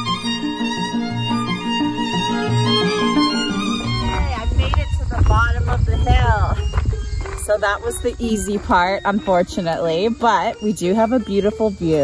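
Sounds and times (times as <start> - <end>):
wind rumble on microphone: 3.8 - 9.8.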